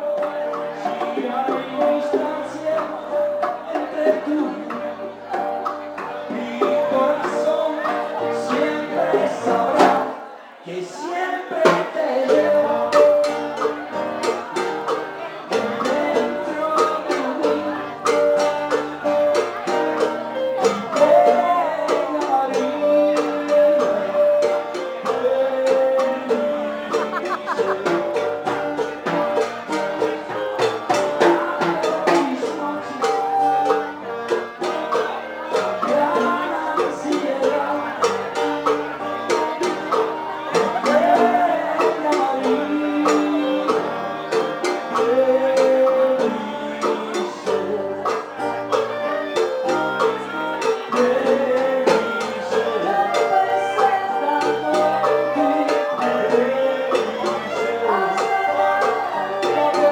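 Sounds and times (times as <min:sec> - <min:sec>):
acoustic guitar: 0:00.0 - 0:59.9
keyboard: 0:00.0 - 0:59.9
light percussion: 0:11.7 - 0:59.9
clarinet melody: 0:15.0 - 0:59.9.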